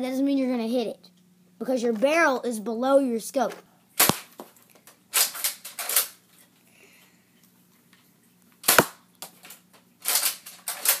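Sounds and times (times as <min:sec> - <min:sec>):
foam dart blaster shot snap: 0:04.0 - 0:04.3, 0:08.6 - 0:09.0
foam dart blaster priming strokes: 0:08.6 - 0:09.0.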